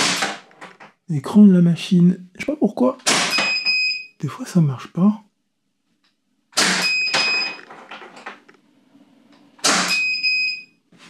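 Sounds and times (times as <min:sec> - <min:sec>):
airsoft pistol shots popping: 0:00.0 - 0:00.4, 0:03.1 - 0:03.5, 0:06.6 - 0:06.9, 0:09.6 - 0:10.0
high electronic beep: 0:03.3 - 0:04.2, 0:06.8 - 0:07.6, 0:09.9 - 0:10.7.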